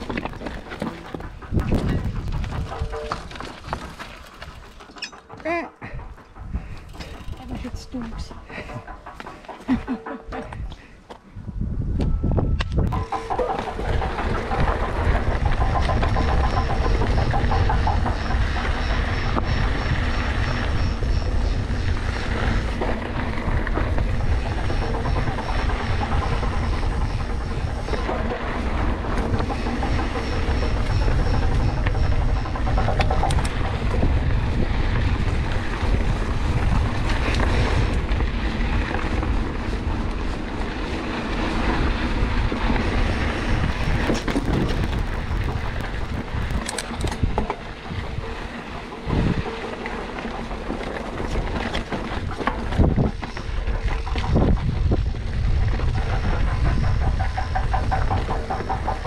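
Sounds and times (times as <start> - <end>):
bike rattling: 0.0 - 59.0
bike tyres on rough ground: 0.0 - 59.0
wind buffeting microphone: 0.0 - 59.0.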